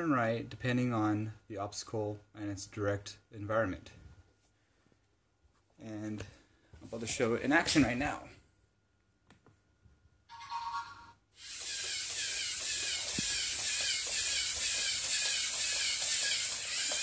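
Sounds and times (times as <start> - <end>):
walking robot motor whir: 11.4 - 17.0.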